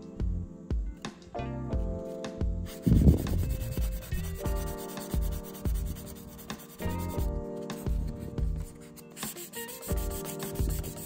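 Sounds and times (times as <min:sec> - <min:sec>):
sanding stick scratching plastic: 0:02.7 - 0:11.0.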